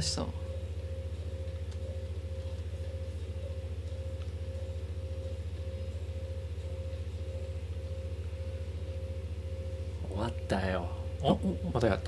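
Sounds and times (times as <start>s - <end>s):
low electronic drone: 0.0s - 12.0s.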